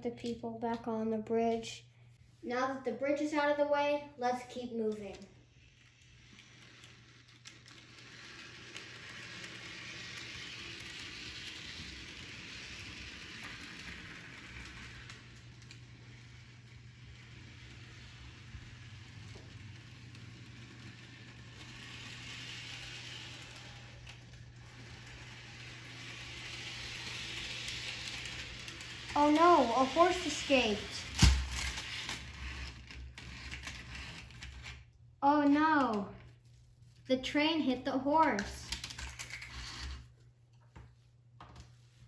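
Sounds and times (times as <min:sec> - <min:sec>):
model train whirring on track: 0:04.8 - 0:34.3.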